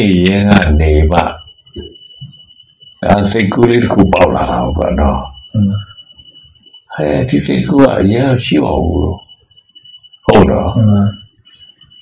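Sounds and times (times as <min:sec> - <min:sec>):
man giving a sermon: 0:00.0 - 0:01.4, 0:03.0 - 0:05.9, 0:06.9 - 0:09.2, 0:10.3 - 0:11.2
faint high-pitched tones: 0:00.0 - 0:12.0.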